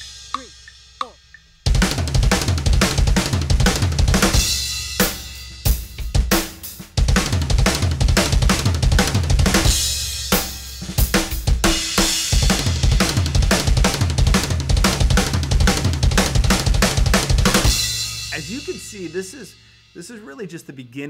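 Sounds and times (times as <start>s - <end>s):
cymbals: 17.6s - 20.6s.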